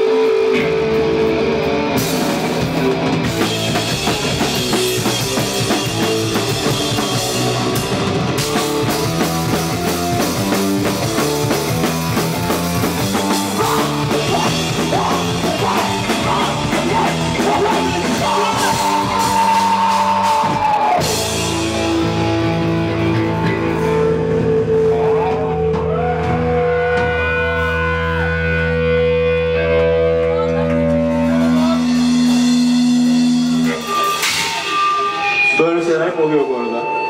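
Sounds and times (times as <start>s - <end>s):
distorted electric guitar: 0.0s - 37.0s
drums: 0.0s - 37.0s
punk band playing live: 0.0s - 37.0s
man's voice: 13.4s - 20.6s, 35.5s - 37.0s.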